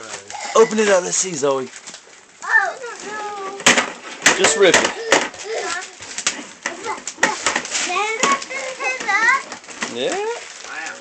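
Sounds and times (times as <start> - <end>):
wrapping paper crinkling and tearing: 0.0 - 11.0.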